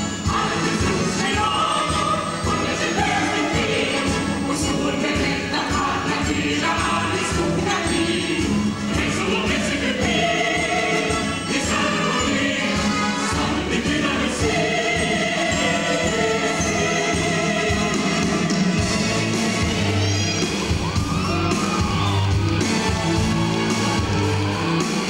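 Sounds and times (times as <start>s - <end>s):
chorus singing with instruments: 0.0s - 25.0s.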